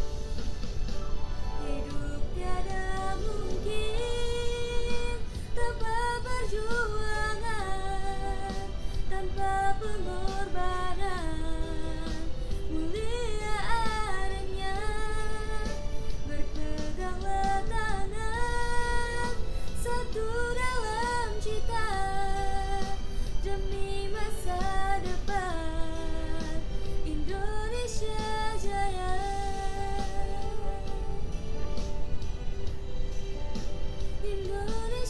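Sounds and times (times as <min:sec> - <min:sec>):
girl singing: 0:01.7 - 0:31.2, 0:34.2 - 0:35.0.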